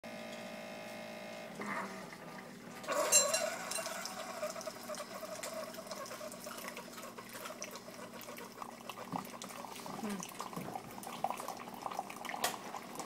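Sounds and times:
coffee maker humming: 0:00.0 - 0:13.0
coffee maker hissing and sputtering: 0:01.6 - 0:13.0
coffee pouring into mug: 0:02.1 - 0:13.0.

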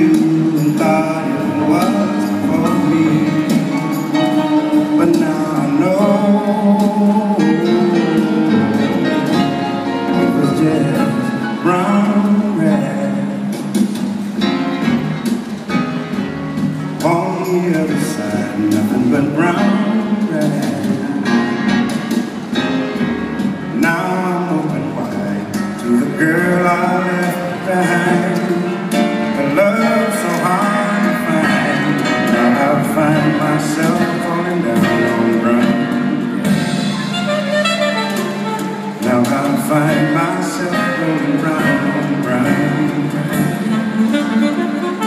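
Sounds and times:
distant live jazz band: 0:00.0 - 0:45.0
double bass: 0:00.0 - 0:45.0
drums: 0:00.0 - 0:45.0
piano: 0:00.0 - 0:45.0
saxophone melody: 0:07.4 - 0:12.2, 0:35.0 - 0:39.6, 0:41.7 - 0:45.0.

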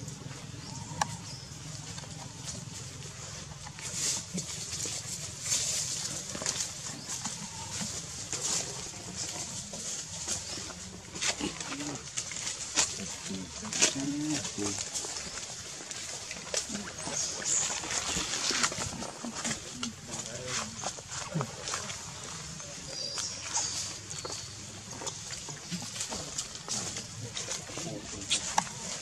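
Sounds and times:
dry leaves crackling and rustling: 0:00.6 - 0:29.0
monkey low vocal sounds: 0:11.2 - 0:14.8.

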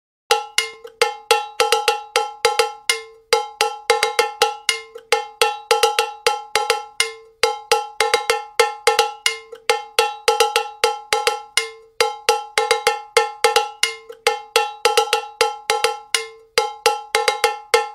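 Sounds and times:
cowbell clanking: 0:00.3 - 0:17.9.

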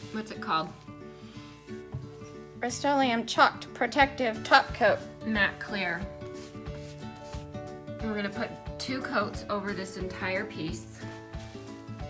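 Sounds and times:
paintbrush brushing on wood: 0:00.0 - 0:00.5, 0:05.9 - 0:07.7, 0:10.7 - 0:12.0
quiet background music: 0:00.0 - 0:12.0.

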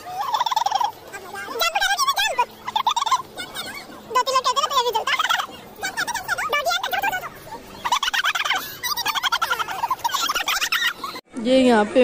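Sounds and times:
children squealing and laughing: 0:00.0 - 0:11.2.

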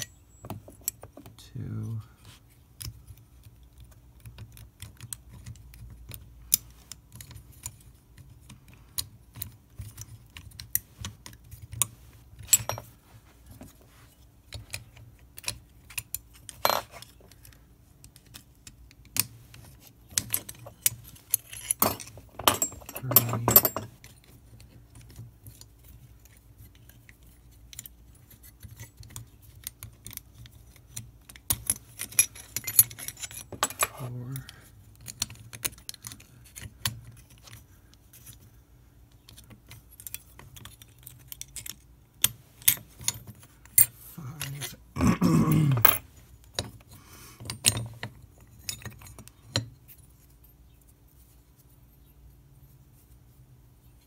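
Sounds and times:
metal lock parts clicking and clinking: 0:00.0 - 0:01.4, 0:02.5 - 0:13.0, 0:14.3 - 0:50.7
metal lock parts rattling: 0:02.7 - 0:13.0, 0:14.4 - 0:38.5, 0:39.1 - 0:50.6.

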